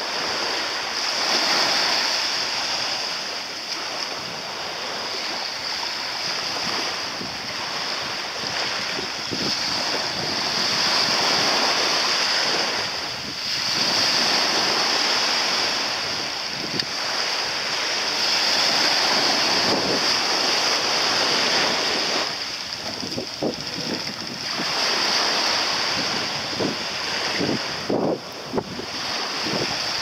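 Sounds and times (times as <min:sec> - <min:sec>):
sea water at shoreline: 0:00.0 - 0:30.0
wind: 0:00.0 - 0:30.0.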